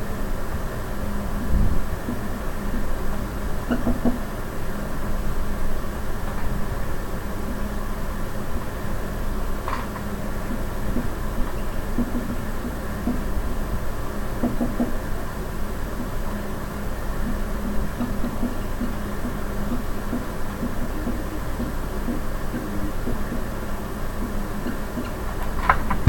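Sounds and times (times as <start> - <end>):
room hum: 0.0 - 26.0.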